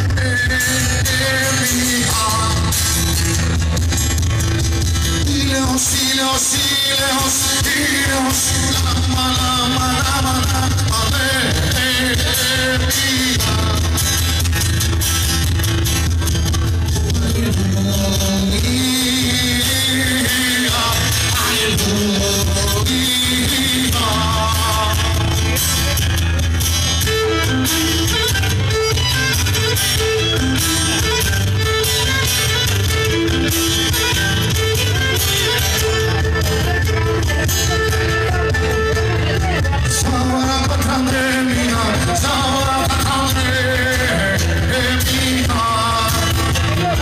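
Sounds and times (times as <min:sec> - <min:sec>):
cajon beat: 0:00.0 - 0:47.0
strummed acoustic guitars: 0:00.0 - 0:47.0
violin melody: 0:26.3 - 0:39.9.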